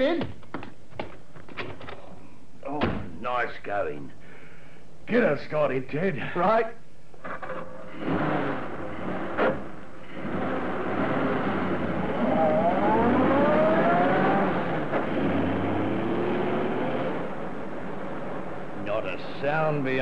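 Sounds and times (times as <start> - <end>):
car engine starting and pulling away: 7.8 - 20.0.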